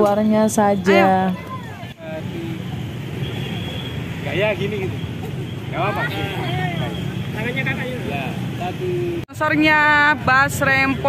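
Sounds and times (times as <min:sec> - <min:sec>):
bystanders talking: 0:00.0 - 0:11.0
low street rumble: 0:00.0 - 0:11.0.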